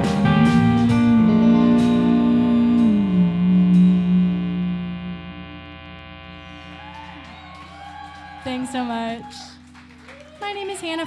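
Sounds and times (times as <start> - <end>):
rock band chord ringing out: 0.0 - 8.9
audience whooping: 6.3 - 11.0.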